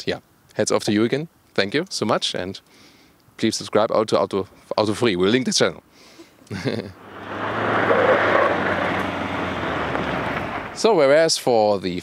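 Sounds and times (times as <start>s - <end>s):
pickup engine: 7.0s - 10.9s
tyres crunching on gravel: 7.0s - 10.9s.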